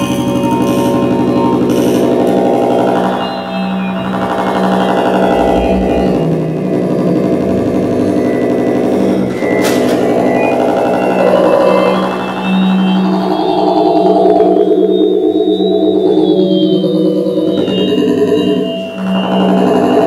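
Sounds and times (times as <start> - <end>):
electroacoustic double bass drone: 0.0 - 20.0
low rumble: 4.8 - 12.7.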